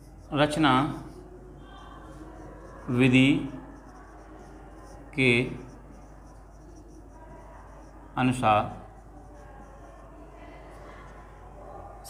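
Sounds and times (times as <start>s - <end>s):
marker pen scratching on whiteboard: 0.0s - 12.0s.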